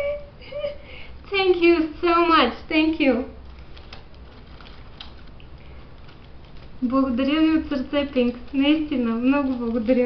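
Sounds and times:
ribbon rustling on gift box: 2.8 - 10.0.

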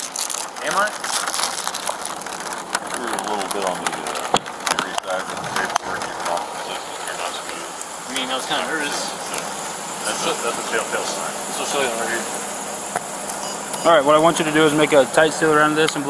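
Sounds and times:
rain hissing: 0.0 - 16.0
muffled voices: 2.9 - 12.6, 13.2 - 16.0.

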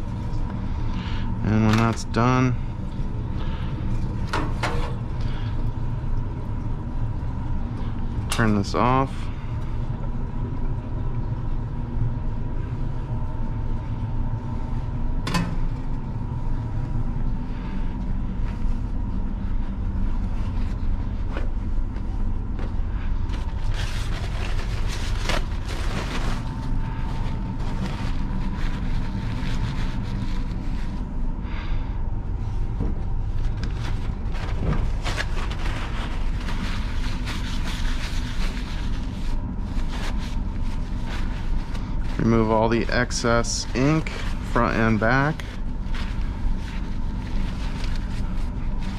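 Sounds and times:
faint constant whine: 0.0 - 48.9
low mechanical hum: 0.0 - 48.9.

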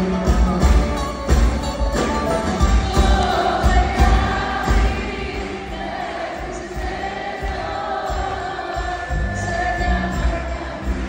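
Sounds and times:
band with bouzouki and guitars: 0.0 - 11.0
many voices singing together: 2.6 - 11.0.

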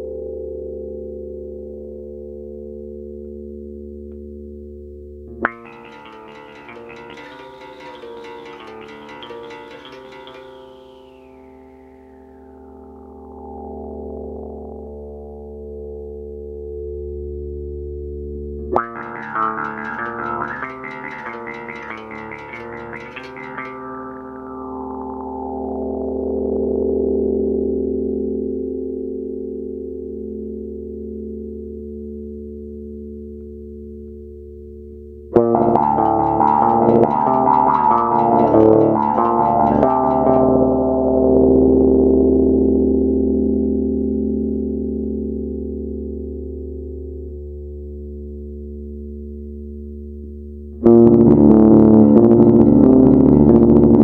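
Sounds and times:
bass guitar with envelope filter: 0.0 - 54.0.

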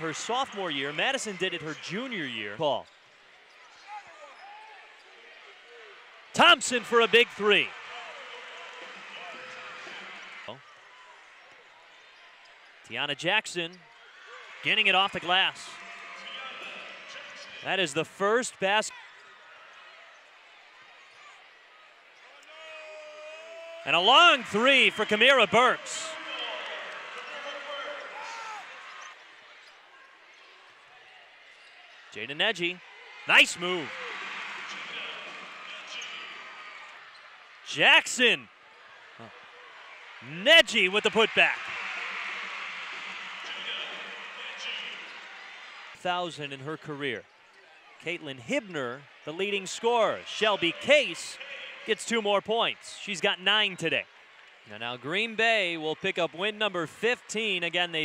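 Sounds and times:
basketball game in an arena: 0.0 - 58.0.

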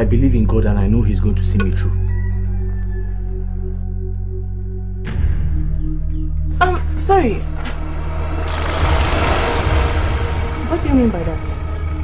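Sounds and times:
film music with low drone: 0.0 - 12.0.

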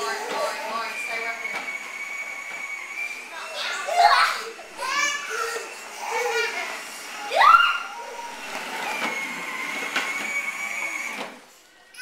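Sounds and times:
young children shouting and squealing: 3.1 - 8.6.

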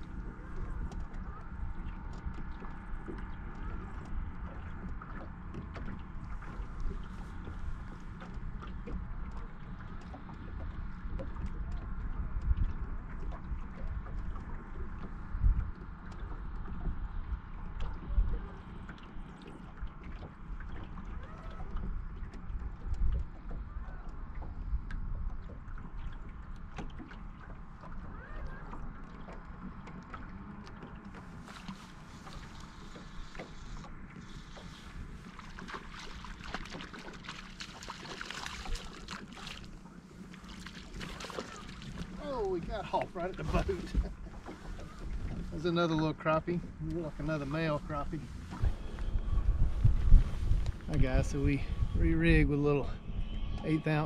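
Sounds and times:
waves lapping against boat hull: 0.0 - 54.0
wind rumbling on microphone: 0.0 - 54.0.

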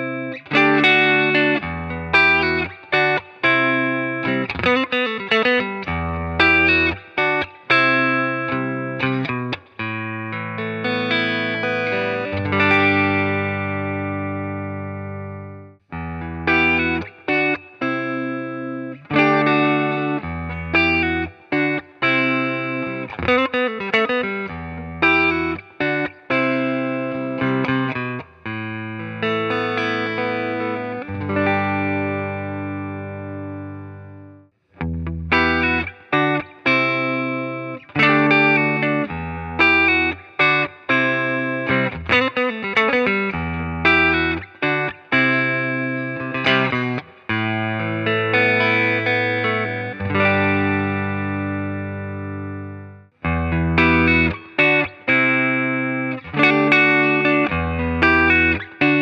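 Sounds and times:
clean electric guitar: 0.0 - 59.0.

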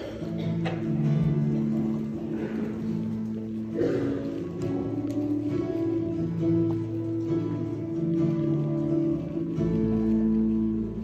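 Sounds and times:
guitar chords: 0.0 - 11.0.

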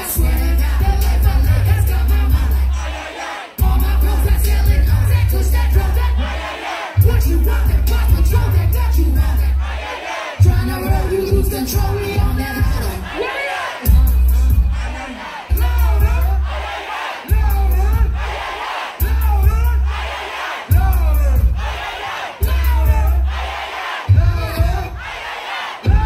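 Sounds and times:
crowd shouting lyrics: 0.0 - 26.0
loud trap beat: 0.0 - 26.0
deep bass hits: 3.6 - 6.2, 20.7 - 21.8.

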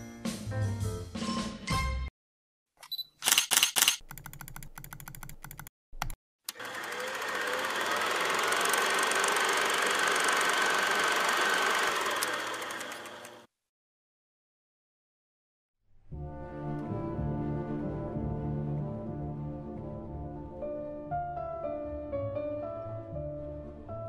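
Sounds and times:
mechanical clicks: 2.8 - 6.6, 12.0 - 13.4
whirr with faint high tone: 6.5 - 13.5.

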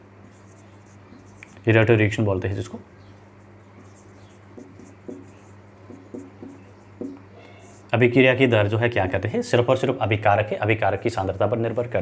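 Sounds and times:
low steady hum: 0.0 - 12.0
marker pen writing on whiteboard: 0.2 - 1.6, 3.4 - 7.9.

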